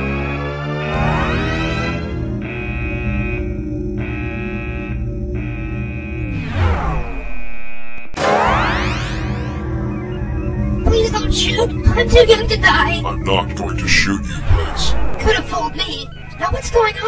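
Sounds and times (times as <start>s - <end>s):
synthesizer chords: 0.0s - 17.0s
rising pitch sweeps: 5.3s - 17.0s
falling synth glide: 6.2s - 17.0s.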